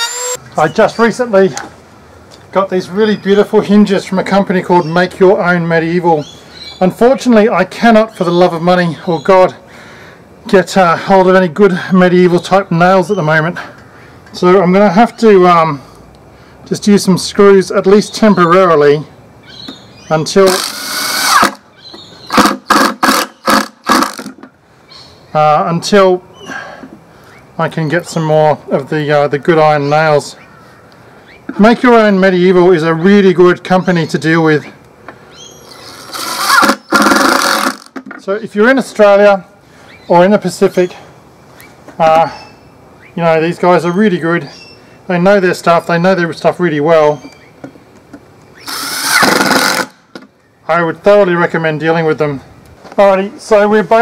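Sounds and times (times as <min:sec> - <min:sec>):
cordless drill driving screw: 0:00.0 - 0:00.4, 0:20.5 - 0:21.6, 0:22.4 - 0:24.3, 0:35.8 - 0:37.9, 0:48.6 - 0:49.9.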